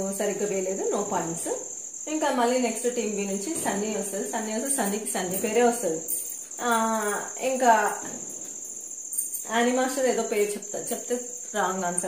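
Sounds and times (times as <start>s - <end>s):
woman speaking: 0.0s - 8.3s, 9.5s - 12.0s
cricket trilling: 0.0s - 12.0s.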